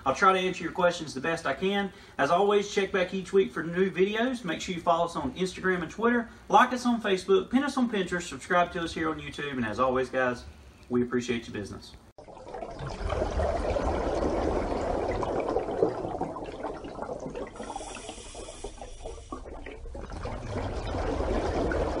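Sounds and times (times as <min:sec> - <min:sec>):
water rushing: 0:12.3 - 0:22.0
bright hiss: 0:17.6 - 0:19.4.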